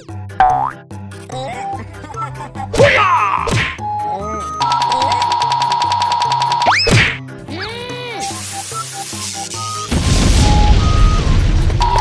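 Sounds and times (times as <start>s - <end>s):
background music: 0.0s - 12.0s
cartoon buzzing tone: 4.6s - 6.9s.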